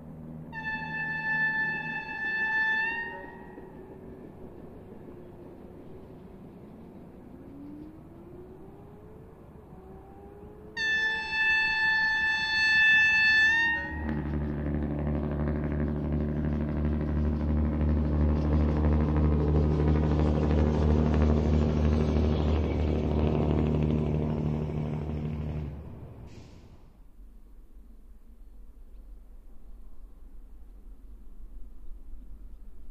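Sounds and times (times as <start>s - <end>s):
diesel engine droning: 0.0s - 27.0s
railbus horn blast: 0.4s - 5.0s, 10.8s - 26.8s.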